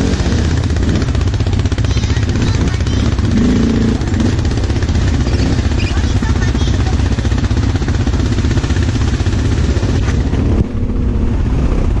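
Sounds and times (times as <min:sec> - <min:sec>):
atv engines rumbling: 0:00.0 - 0:12.0.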